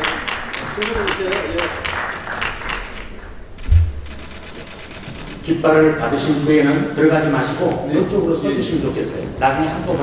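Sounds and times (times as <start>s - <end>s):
audience clapping in rhythm: 0.0s - 3.3s
low thump: 3.6s - 4.1s.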